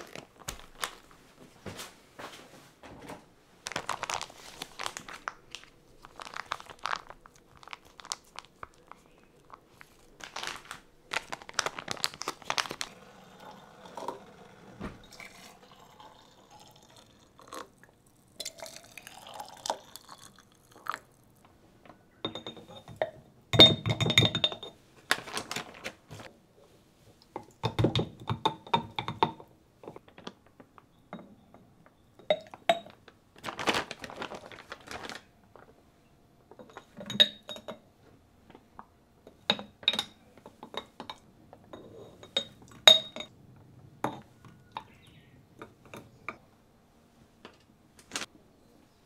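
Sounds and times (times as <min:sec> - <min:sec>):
plastic zipper bags crinkling: 0:00.0 - 0:01.2, 0:03.6 - 0:17.6, 0:25.0 - 0:26.3, 0:32.8 - 0:35.7
spoon clinking against glass jar: 0:41.7 - 0:43.3.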